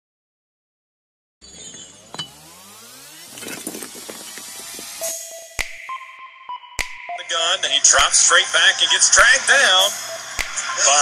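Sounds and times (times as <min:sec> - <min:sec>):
rising synthetic sweep: 0:01.9 - 0:10.8.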